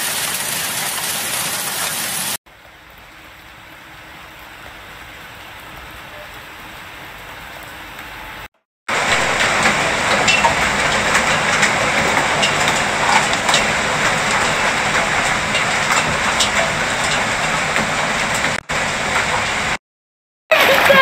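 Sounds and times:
heavy rain hissing: 0.0 - 19.8, 20.5 - 21.0
hailstones striking deck boards: 8.9 - 19.4.

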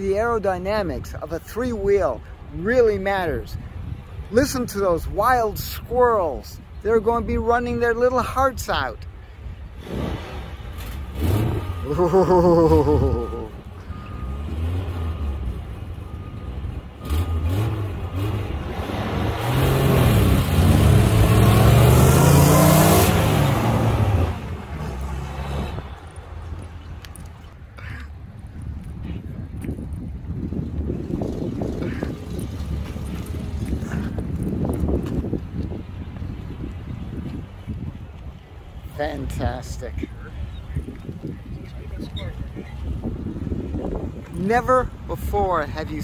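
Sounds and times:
car engines accelerating hard: 9.8 - 28.1, 30.3 - 37.9.

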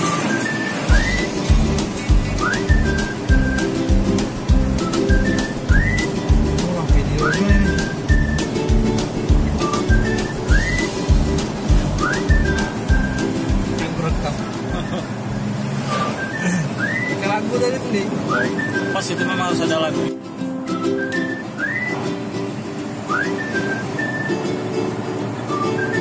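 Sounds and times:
high whistle-like melody: 0.0 - 13.8, 14.7 - 17.4, 18.2 - 22.3, 23.0 - 24.8, 25.5 - 26.0
thumping music beat: 0.9 - 15.4.

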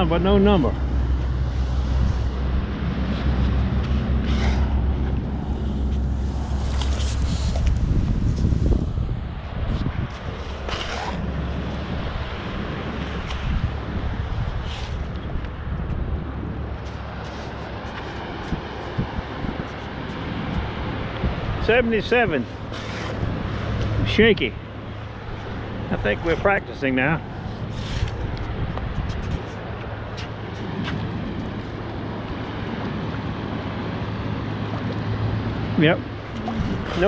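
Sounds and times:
heavy low rumble: 0.0 - 37.0
surf and water: 0.0 - 37.0
wind buffeting microphone: 0.0 - 37.0.

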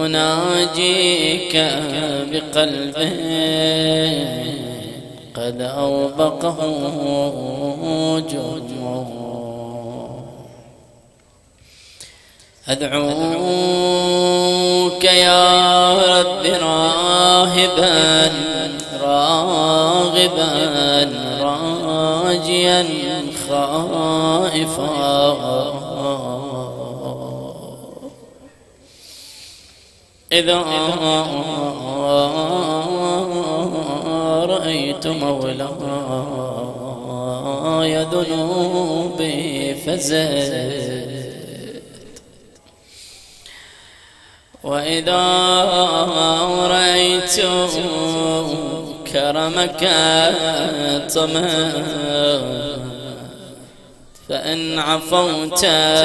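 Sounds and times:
man chanting into a microphone: 0.0 - 11.0, 12.5 - 28.5, 30.3 - 42.6, 44.5 - 56.0.

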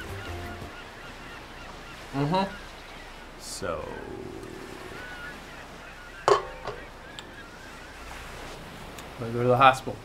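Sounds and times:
bird chirps: 0.0 - 8.3.

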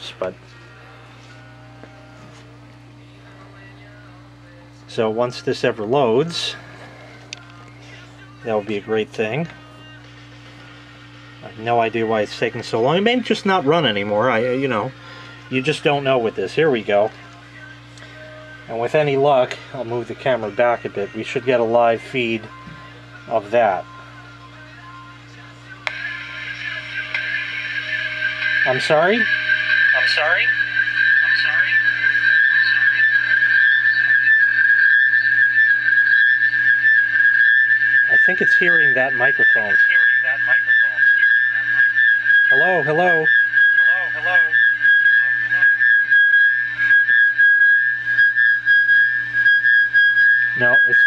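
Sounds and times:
high-pitched hiss and whine: 0.0 - 51.0
low electrical hum: 0.0 - 51.0
echoing voice: 25.9 - 33.5
high feedback whistle: 25.9 - 51.0.

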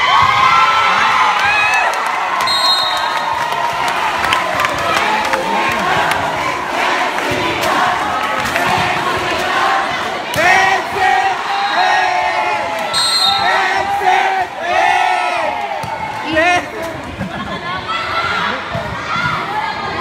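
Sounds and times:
crowd cheering and shouting: 0.0 - 20.0.

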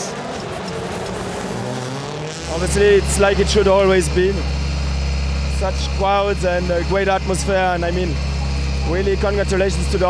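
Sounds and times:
rally car engine driving past: 0.1 - 9.7.

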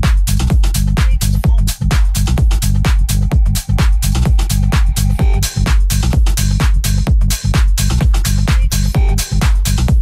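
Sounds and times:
deep bassline: 0.0 - 10.0
hi-hat hits: 0.0 - 10.0
kick drum: 0.0 - 10.0.

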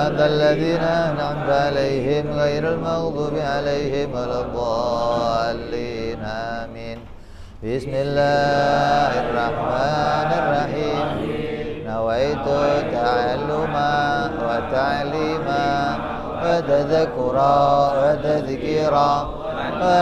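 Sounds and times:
man chanting melodically: 0.0 - 20.0.

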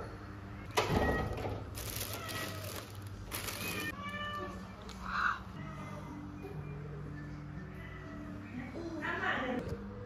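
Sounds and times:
plastic bag rustling: 1.6 - 4.0.

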